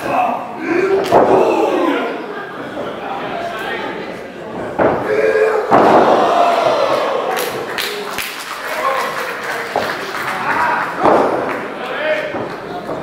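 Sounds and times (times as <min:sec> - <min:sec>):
crowd shouting and yelling: 0:00.0 - 0:02.6, 0:04.8 - 0:09.2.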